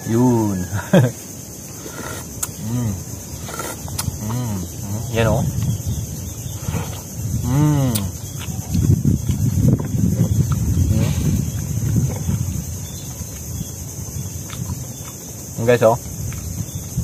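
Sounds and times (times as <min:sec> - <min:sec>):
man humming mmm: 0:01.8 - 0:05.7, 0:06.6 - 0:08.9, 0:10.5 - 0:12.3
mouth clicks and chewing: 0:01.8 - 0:17.0.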